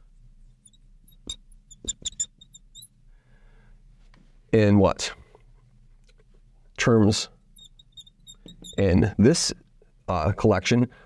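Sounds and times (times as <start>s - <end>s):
marker squeaking on glass: 0.6s - 3.0s, 7.5s - 9.2s.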